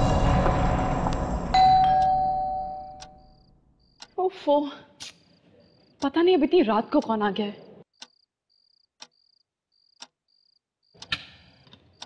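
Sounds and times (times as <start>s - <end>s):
dark background score: 0.0s - 4.1s
doorbell chime: 1.6s - 3.2s.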